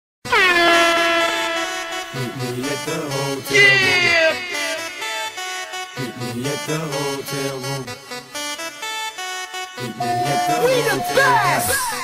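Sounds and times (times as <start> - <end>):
air horn blast: 0.3 - 6.0, 10.0 - 12.0.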